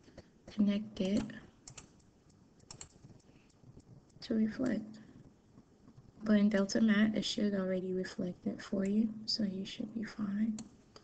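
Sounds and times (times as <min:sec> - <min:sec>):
computer mouse clicks: 0:00.1 - 0:05.1, 0:10.5 - 0:11.0.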